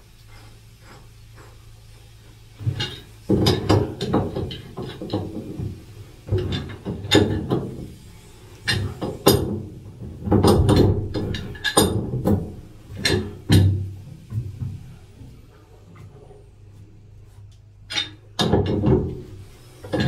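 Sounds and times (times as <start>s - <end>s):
pipe wrench knocking on metal: 8.7s - 13.8s.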